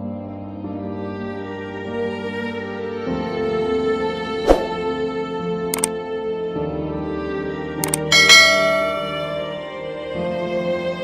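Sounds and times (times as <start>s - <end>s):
soft background music: 0.0s - 11.0s
mouse double click: 7.8s - 8.1s
bell-like notification ding: 7.8s - 9.8s.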